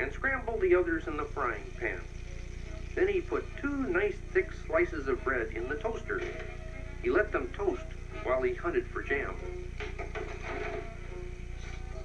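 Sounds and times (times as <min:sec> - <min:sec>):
electrical buzz and hum: 0:00.0 - 0:12.0
faint background music: 0:00.0 - 0:12.0.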